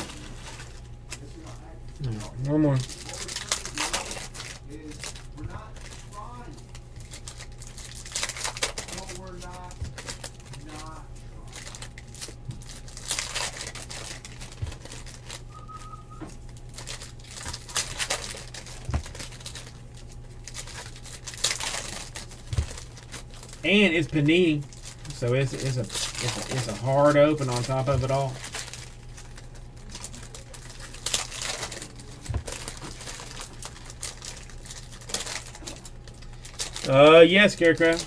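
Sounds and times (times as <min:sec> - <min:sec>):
foil wrappers torn and crinkled: 0:00.0 - 0:38.0.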